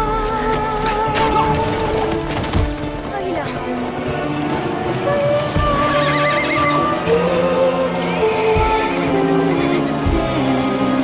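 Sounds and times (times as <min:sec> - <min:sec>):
music with long held notes: 0:00.0 - 0:11.0
horse whinnying: 0:05.7 - 0:07.2.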